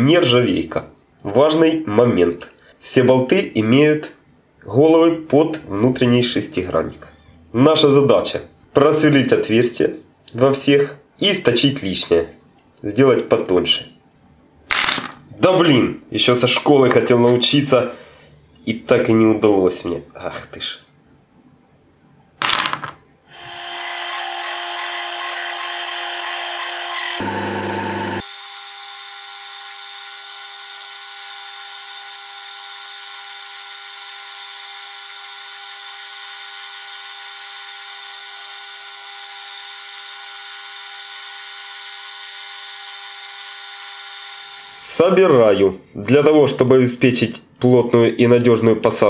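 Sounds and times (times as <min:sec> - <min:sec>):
lathe running with whine: 0:23.3 - 0:45.0
drill boring into steel: 0:23.3 - 0:45.2.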